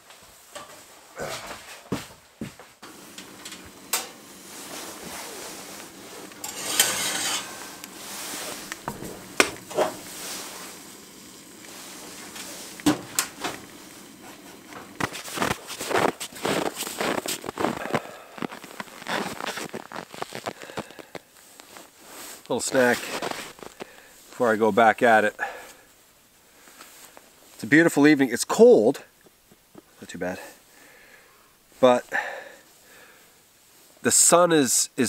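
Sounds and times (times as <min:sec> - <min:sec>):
cookware clinking and knocking: 0:06.4 - 0:07.6.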